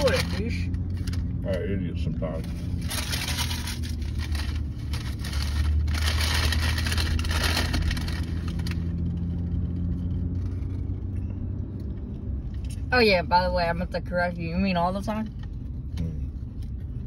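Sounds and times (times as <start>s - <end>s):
car cabin engine hum: 0.0s - 17.0s
close rustling and crackling: 2.2s - 10.9s.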